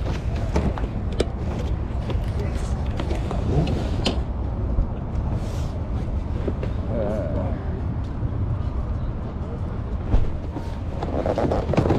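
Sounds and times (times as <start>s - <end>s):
faint voices: 0.0s - 11.9s.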